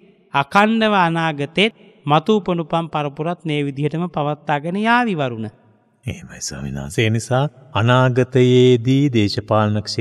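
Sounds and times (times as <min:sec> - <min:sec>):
man chanting: 0:06.1 - 0:10.0.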